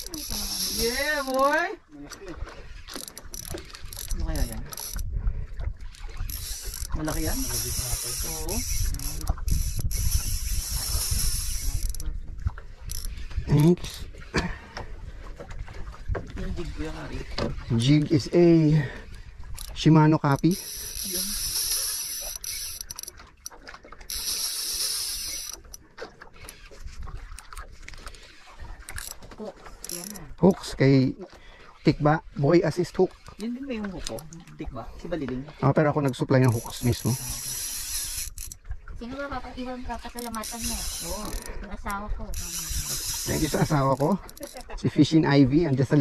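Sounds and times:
fishing reel gears whirring: 0.0s - 5.1s, 5.8s - 14.2s, 17.8s - 27.6s, 28.4s - 30.9s, 31.9s - 46.0s.

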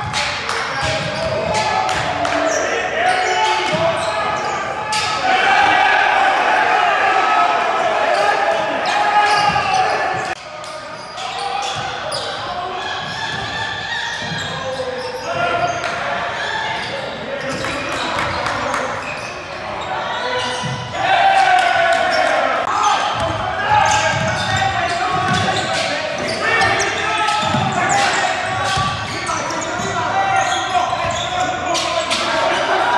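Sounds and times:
basketball bouncing on court: 0.0s - 2.2s, 23.2s - 26.8s, 27.4s - 30.0s
people calling out: 0.8s - 10.4s.

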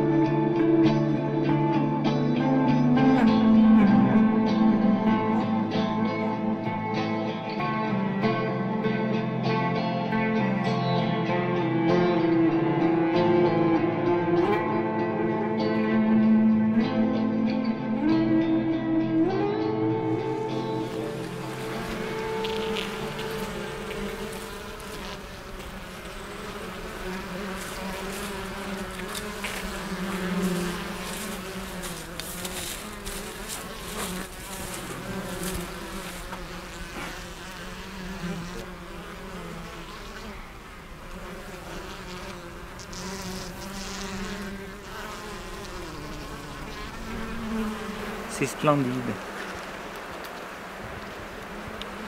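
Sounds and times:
bees buzzing: 10.3s - 52.0s.

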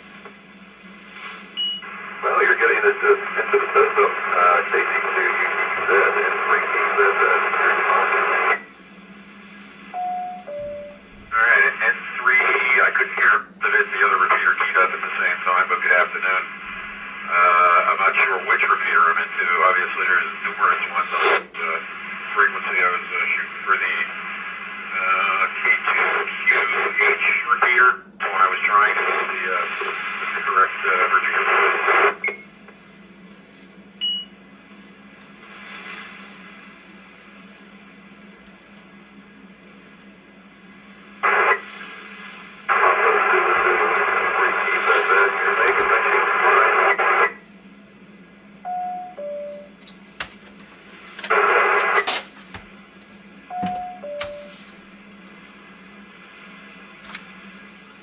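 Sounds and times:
radio hiss: 0.0s - 8.7s, 11.3s - 32.4s, 35.1s - 37.6s, 40.9s - 47.5s, 50.7s - 52.4s, 54.0s - 58.0s
steady hum: 0.0s - 58.0s
radio speech over speaker: 1.8s - 8.6s, 11.3s - 32.3s, 41.2s - 47.4s, 51.2s - 52.1s.

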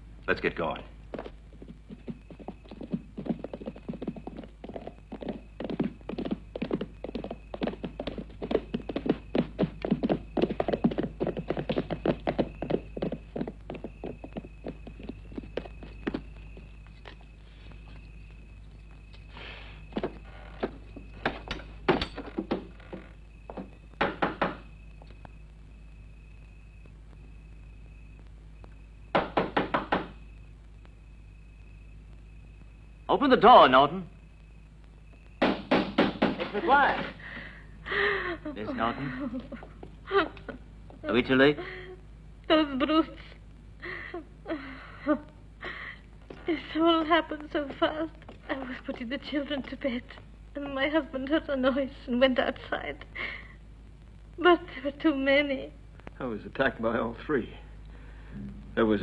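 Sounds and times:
horse hooves clattering: 1.0s - 19.2s, 19.8s - 24.6s
thin steady high tone: 1.6s - 29.1s, 36.4s - 52.7s, 56.2s - 59.0s
loud knocks on wooden door: 23.5s - 24.6s, 29.1s - 30.2s, 35.4s - 36.6s
scattered thumps: 58.3s - 59.0s.

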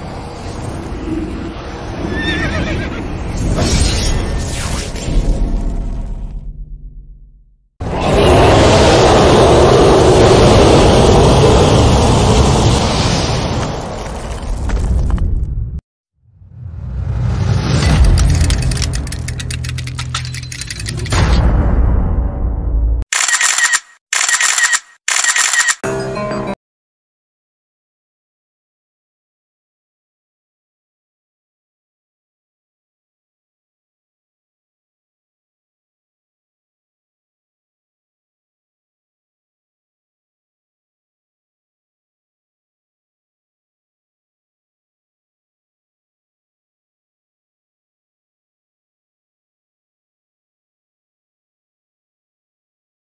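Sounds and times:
sharp rapid clicking effect: 17.8s - 21.2s, 23.1s - 25.8s
deep boom: 21.2s - 23.0s.

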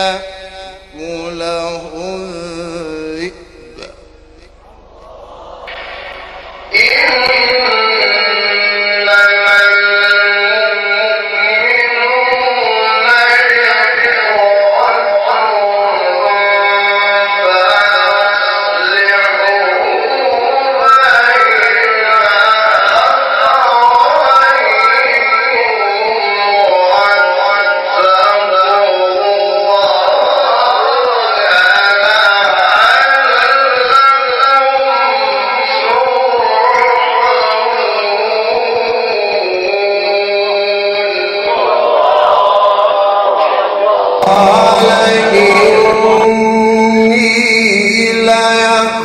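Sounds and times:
man chanting melodically: 0.0s - 49.0s.

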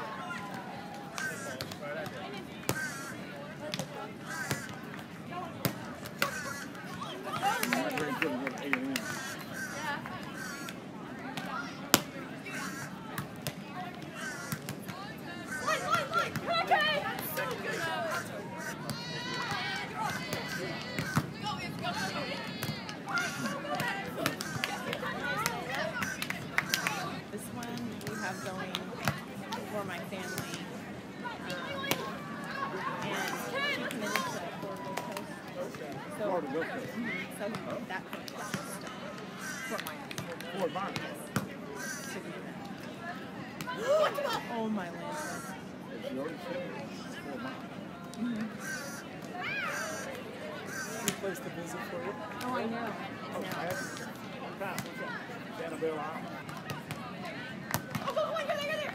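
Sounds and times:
faint voices: 0.0s - 58.9s
players calling out: 0.0s - 58.9s
people talking: 5.3s - 58.9s.

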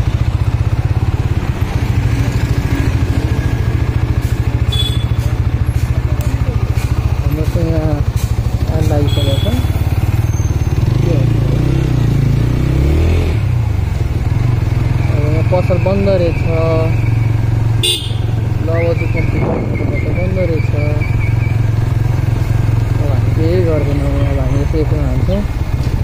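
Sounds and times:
motorcycle engine running: 0.0s - 26.0s
voices: 2.6s - 12.0s, 14.7s - 21.6s, 22.8s - 25.6s.

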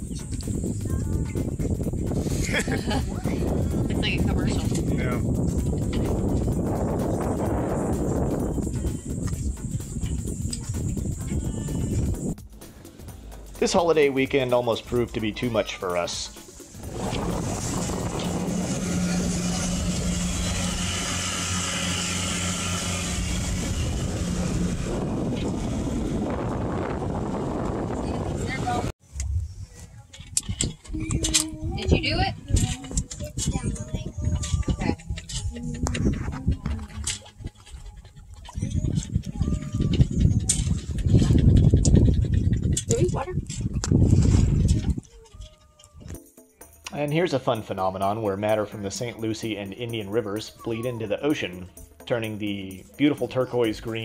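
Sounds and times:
wind buffeting microphone: 0.0s - 12.6s, 16.7s - 46.2s
choppy water: 15.5s - 21.6s, 35.6s - 45.8s
boat engine droning: 16.0s - 28.9s, 31.3s - 41.4s.

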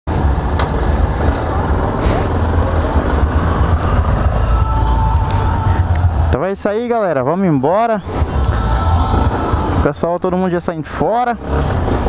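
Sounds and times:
motorcycle engine rumbling: 0.1s - 12.0s
motorcycle traffic noise: 0.1s - 12.0s.

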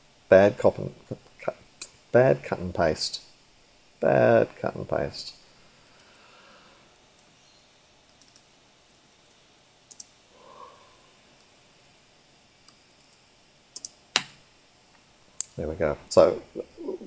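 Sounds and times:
computer keyboard keys clicking: 8.1s - 8.4s, 9.9s - 10.1s.

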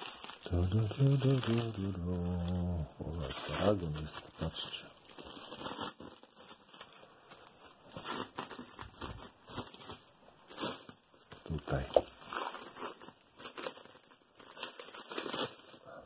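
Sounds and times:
plastic sleeve crinkling: 0.0s - 16.0s.

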